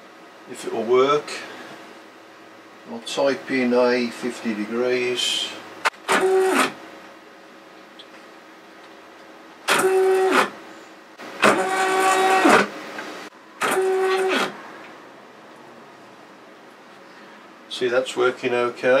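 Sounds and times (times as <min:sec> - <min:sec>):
motor whine rising and falling: 0:06.0 - 0:06.8, 0:09.7 - 0:10.6, 0:11.2 - 0:14.7.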